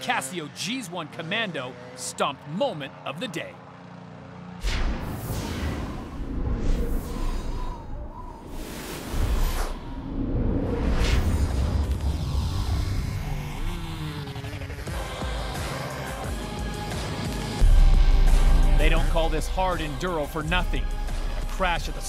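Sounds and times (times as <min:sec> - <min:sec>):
deep rumbling: 0:04.6 - 0:13.8, 0:17.6 - 0:22.0
music: 0:10.6 - 0:22.0.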